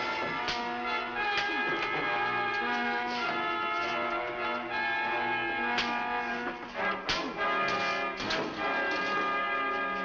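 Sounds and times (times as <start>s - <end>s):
orchestral music with brass: 0.0s - 10.0s.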